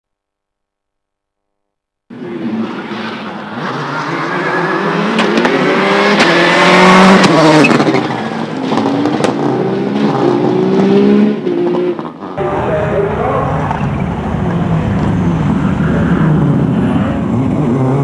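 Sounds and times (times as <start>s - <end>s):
rally car engine accelerating: 2.1s - 18.0s.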